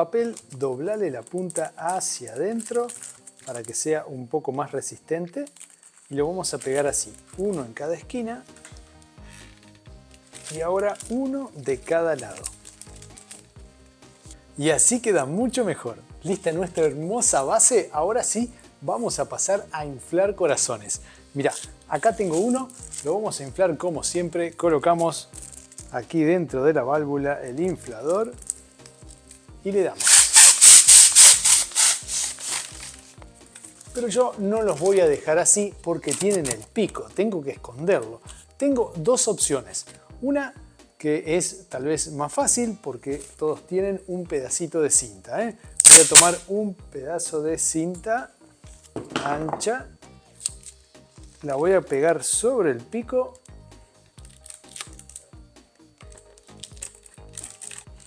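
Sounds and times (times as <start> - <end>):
foil balloon and tape crinkling: 0.0 - 4.1, 4.7 - 13.6, 20.5 - 37.0, 45.8 - 46.4, 54.2 - 55.3, 56.0 - 58.0
soft background music: 0.0 - 58.0
balloon pump hissing strokes: 27.9 - 34.0, 45.8 - 46.4.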